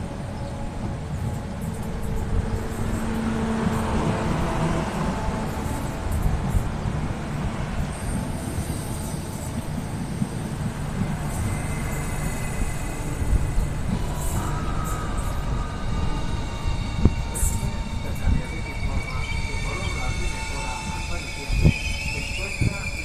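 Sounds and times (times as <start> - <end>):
train wheels rumbling on rails: 0.0 - 23.0.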